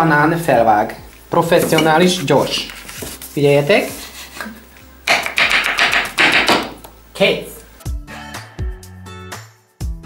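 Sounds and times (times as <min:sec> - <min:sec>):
knife chopping on wooden board: 0:05.1 - 0:06.8.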